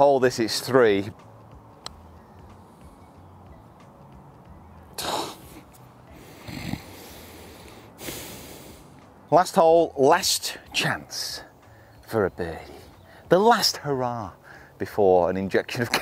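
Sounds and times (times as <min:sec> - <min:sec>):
low outdoor background: 0:00.0 - 0:16.0.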